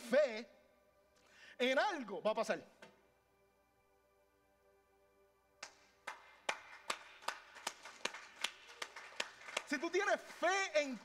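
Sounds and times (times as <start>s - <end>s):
hands clapping in rhythm: 5.6s - 11.0s.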